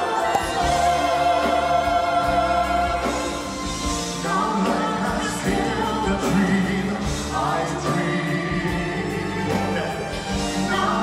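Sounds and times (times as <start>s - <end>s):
singers with a band: 0.0s - 11.0s.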